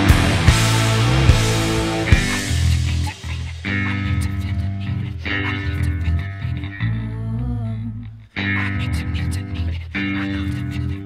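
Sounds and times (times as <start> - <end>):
progressive rock band playing: 0.0 - 4.0
wavering vocal line: 1.2 - 11.0.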